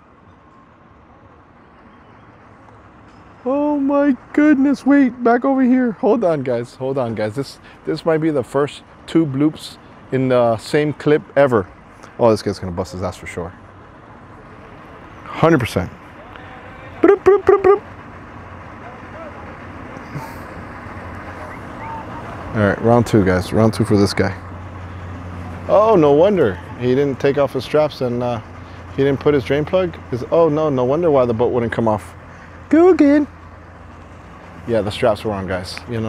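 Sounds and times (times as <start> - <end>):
distant vehicle engines rumbling: 0.0 - 36.0
faint distant voices: 12.2 - 36.0.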